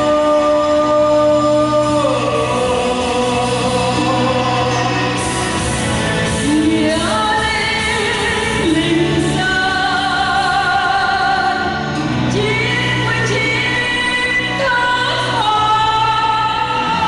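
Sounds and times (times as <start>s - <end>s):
group of voices singing: 0.0s - 17.0s
instrumental accompaniment: 0.0s - 17.0s.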